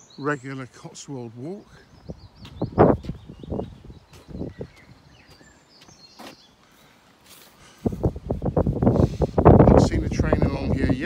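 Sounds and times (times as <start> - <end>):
bird chirps: 0.0 - 7.5
wind rumble on microphone: 1.8 - 5.4, 7.7 - 11.0.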